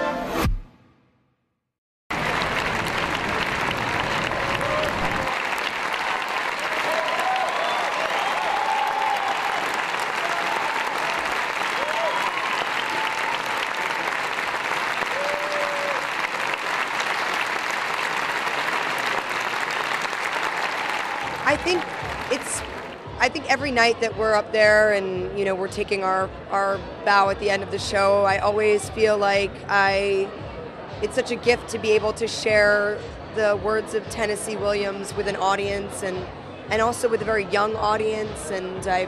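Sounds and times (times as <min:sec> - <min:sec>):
audience applauding: 0:02.1 - 0:23.0.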